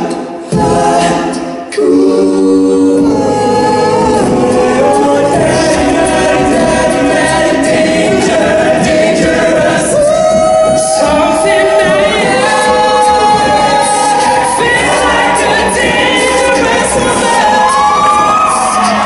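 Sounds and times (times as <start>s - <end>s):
male a cappella group singing: 0.0s - 19.0s.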